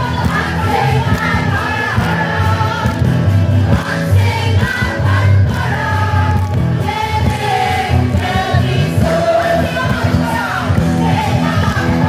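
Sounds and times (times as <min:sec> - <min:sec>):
live band with singing: 0:00.0 - 0:12.0.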